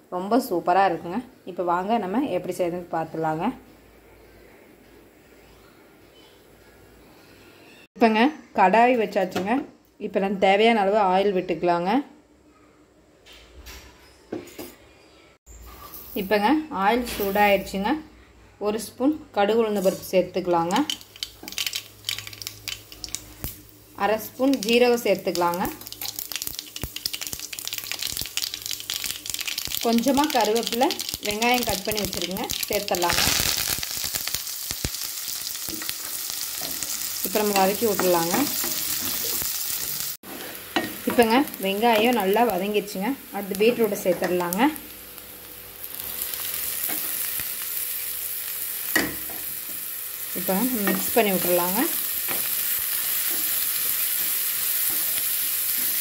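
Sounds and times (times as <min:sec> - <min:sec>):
seeds sizzling in hot oil: 0:19.7 - 0:56.0
seeds crackling: 0:20.7 - 0:23.6, 0:25.4 - 0:40.1.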